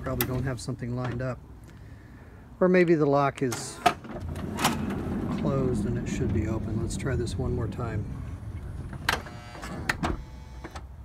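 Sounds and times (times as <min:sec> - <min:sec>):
sliding door mechanism clicks: 0:03.5 - 0:07.4, 0:08.2 - 0:10.9.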